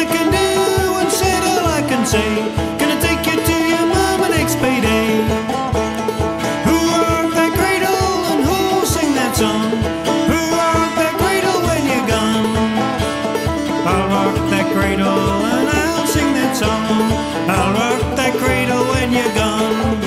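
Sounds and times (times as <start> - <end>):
string-band music: 0.0 - 20.0.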